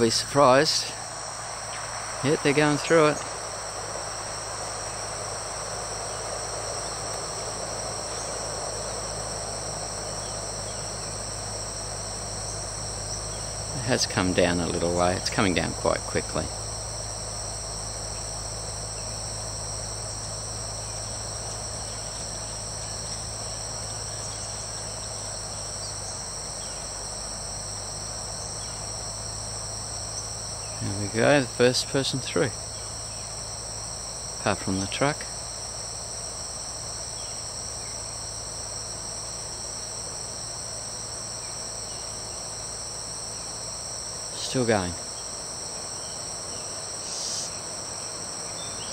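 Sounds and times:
low rushing noise: 0.0 - 10.1
low steady rumble: 0.0 - 42.4
insects ringing: 0.0 - 48.9.

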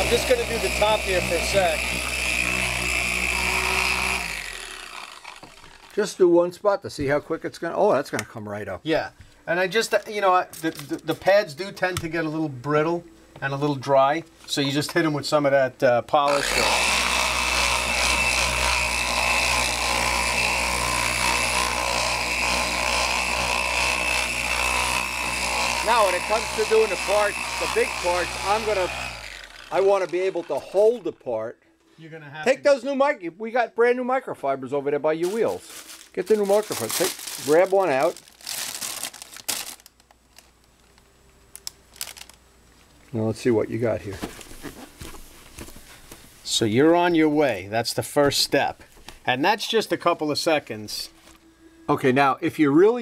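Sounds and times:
electric buffer motor whine: 0.0 - 6.2, 16.2 - 31.3
plastic packaging crinkling: 35.2 - 43.0.

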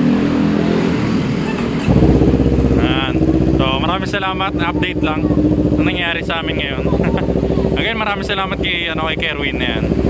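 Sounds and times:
motorcycle engine starting and idling: 0.8 - 10.0
other motorcycle engines idling: 1.0 - 10.0.

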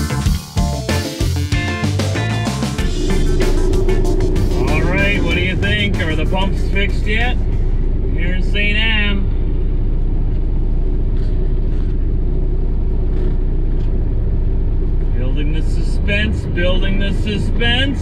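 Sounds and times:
truck engine low drone: 0.1 - 18.0
wavering voice: 2.8 - 7.5.

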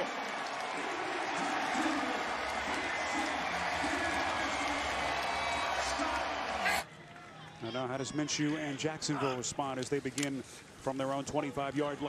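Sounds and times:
crowd cheering and applauding: 0.0 - 8.8.

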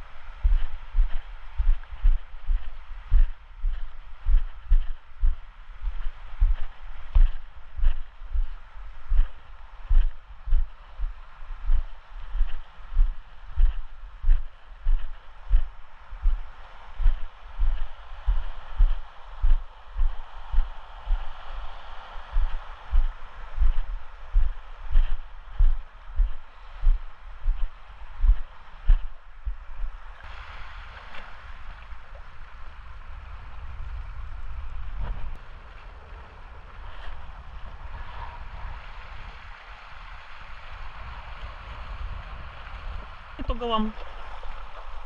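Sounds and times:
low rumble: 0.0 - 30.2.

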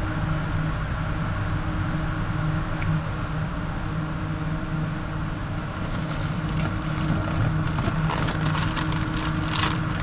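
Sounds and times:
refrigerator and ventilation hum: 0.0 - 10.0.

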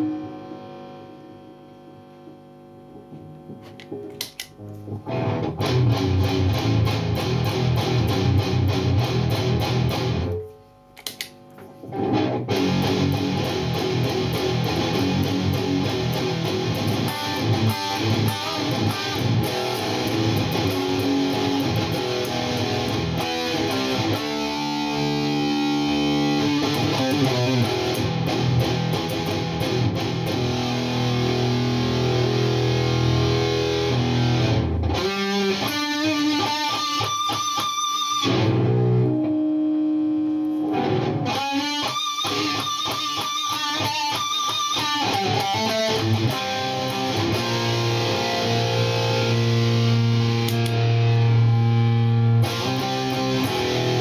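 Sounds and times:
distorted electric guitar riffing: 0.0 - 2.1, 3.0 - 54.0.

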